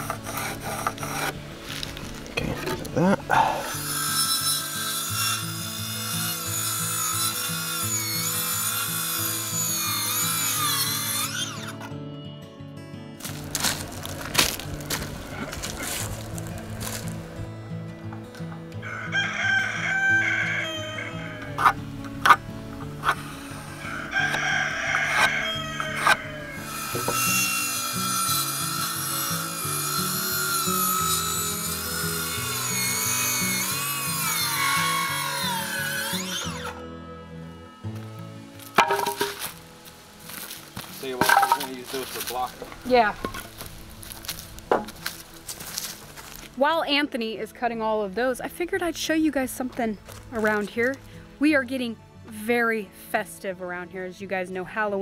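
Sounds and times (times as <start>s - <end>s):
background music: 0.0s - 55.0s
circular saw motor whine: 23.1s - 38.0s
wood knocks: 38.8s - 39.4s, 44.7s - 45.0s.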